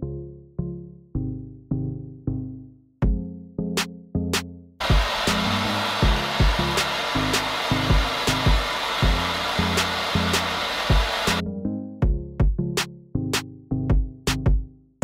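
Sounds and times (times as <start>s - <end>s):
gas torch hissing: 4.8s - 11.4s.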